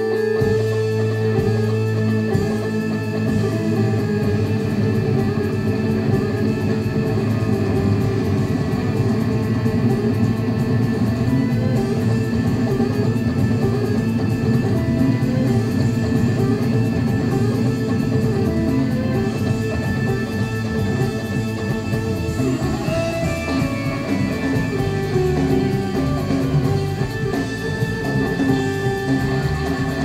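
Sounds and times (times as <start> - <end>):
electric guitars: 0.0 - 30.0
rock band playing live: 0.0 - 30.0.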